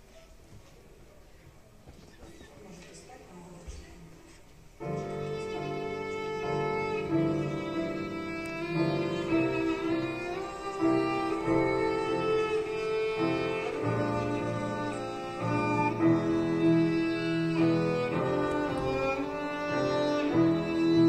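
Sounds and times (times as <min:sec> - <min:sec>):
grand piano accompaniment: 0:04.8 - 0:21.0
violin melody: 0:04.8 - 0:21.0.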